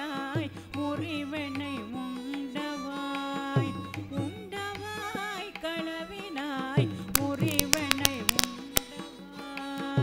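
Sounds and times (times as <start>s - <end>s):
violin: 0.0s - 10.0s
woman singing: 0.0s - 10.0s
mridangam drum strokes: 7.1s - 9.0s.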